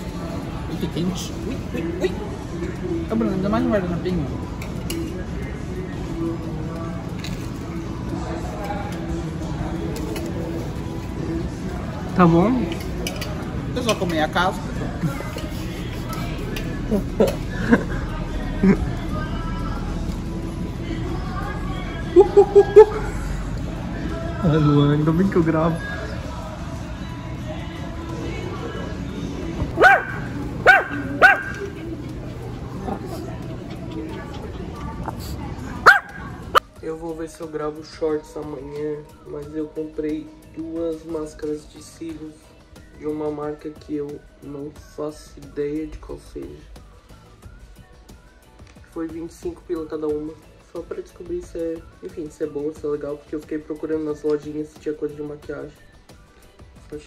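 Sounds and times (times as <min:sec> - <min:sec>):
faint distant voices: 0:00.0 - 0:40.0
background music: 0:00.0 - 0:57.0
dog barking: 0:29.7 - 0:31.8, 0:35.8 - 0:36.4.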